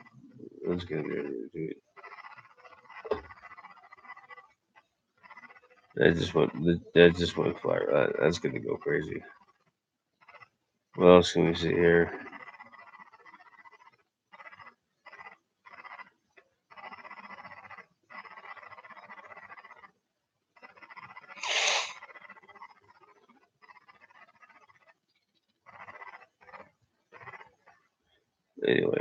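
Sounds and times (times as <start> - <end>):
breathing and mouth noises: 21.3 - 22.1
congested nose sniff: 21.4 - 22.0.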